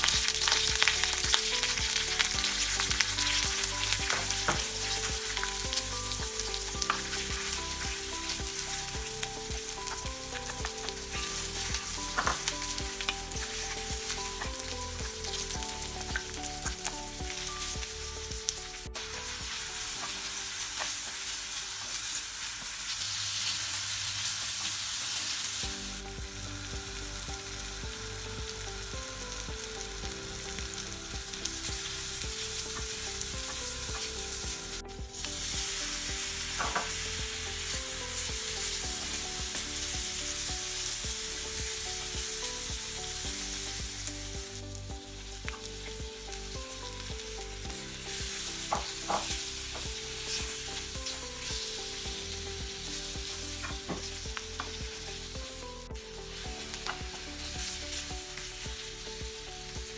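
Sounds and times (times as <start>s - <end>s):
food sizzling in hot oil: 0.0s - 59.9s.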